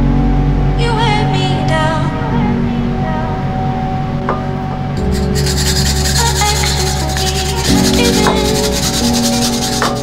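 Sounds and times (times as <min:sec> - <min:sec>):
background music: 0:00.0 - 0:10.0
radish grating strokes: 0:05.0 - 0:10.0.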